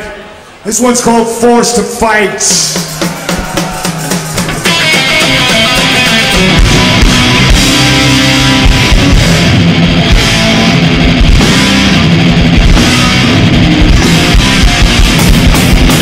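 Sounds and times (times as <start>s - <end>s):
metal band playing: 2.4s - 16.0s.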